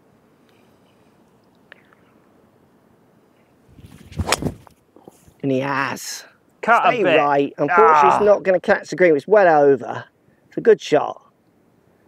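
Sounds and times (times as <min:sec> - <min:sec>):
wind noise on microphone: 0:03.6 - 0:05.4.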